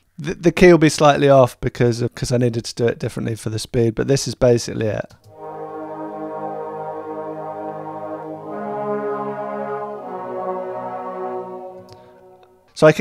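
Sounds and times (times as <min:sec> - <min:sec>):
synth pad chords: 0:05.3 - 0:12.7.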